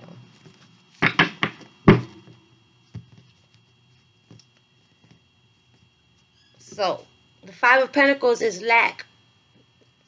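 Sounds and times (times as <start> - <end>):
cards tapping and knocking: 1.0 - 3.5.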